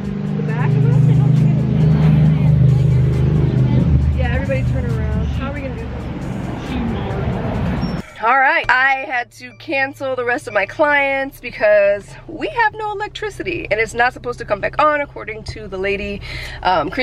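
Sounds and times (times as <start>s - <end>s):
background music with bass line: 0.0s - 17.0s
voices: 0.0s - 17.0s.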